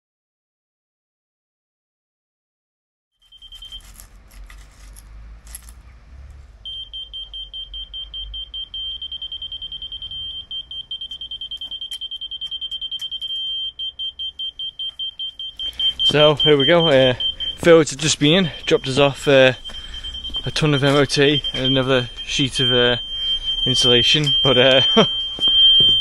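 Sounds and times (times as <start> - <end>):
high-pitched laser receiver beeping: 6.7 - 26.0.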